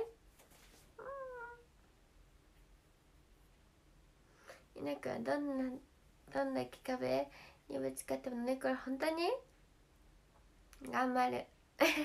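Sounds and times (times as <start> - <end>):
cat meowing: 1.0 - 1.6.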